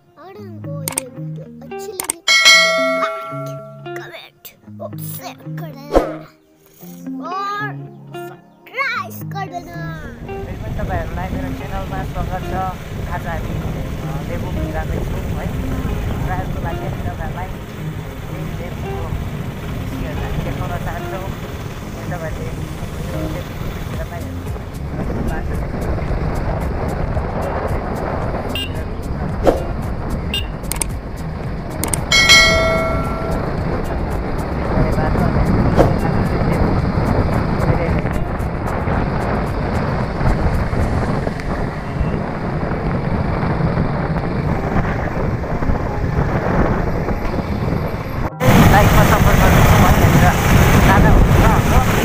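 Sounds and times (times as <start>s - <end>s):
motorcycle engine and road rumble: 9.9s - 52.0s
wind on microphone: 10.0s - 52.0s.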